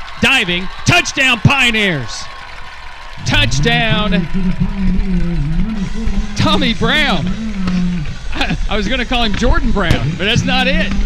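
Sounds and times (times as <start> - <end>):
man's long drawn-out call: 3.2 - 8.8.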